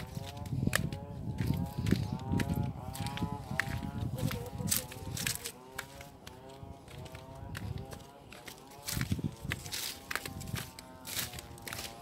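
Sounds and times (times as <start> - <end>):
footsteps on dry grass and fronds: 0.0 - 12.0.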